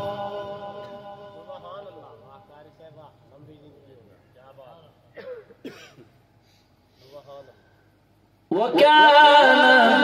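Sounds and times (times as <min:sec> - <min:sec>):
man clearing throat and coughing: 0:05.1 - 0:06.2.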